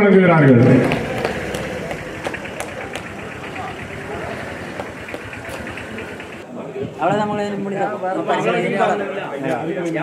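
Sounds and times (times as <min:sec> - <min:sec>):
indistinct voices: 0:00.4 - 0:06.4.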